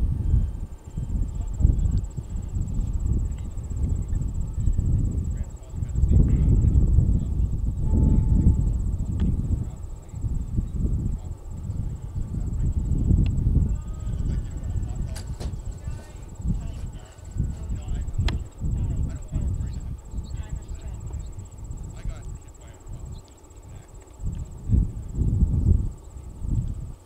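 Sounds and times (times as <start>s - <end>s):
faint high-pitched whine: 0.0s - 27.0s
wind buffeting microphone: 0.0s - 27.0s.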